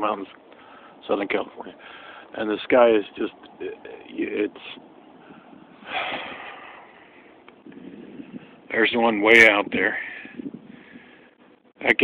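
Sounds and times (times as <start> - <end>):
wind on microphone: 5.2 - 11.3.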